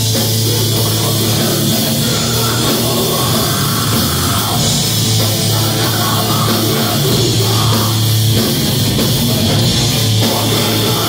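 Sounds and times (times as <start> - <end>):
bass guitar: 0.0 - 11.0
distorted electric guitars: 0.0 - 11.0
drum kit: 0.0 - 11.0.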